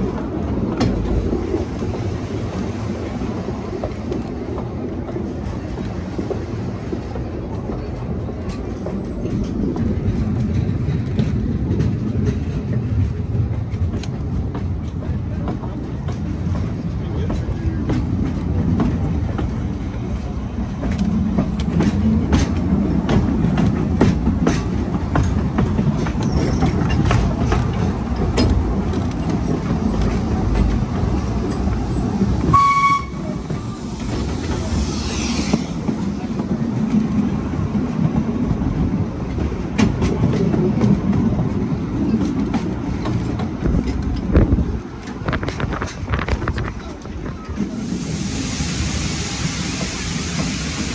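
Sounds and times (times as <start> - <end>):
train wheels rumbling: 0.0 - 50.9
wheels clacking over rail joints: 3.7 - 47.8
train whistle toot: 32.5 - 33.5.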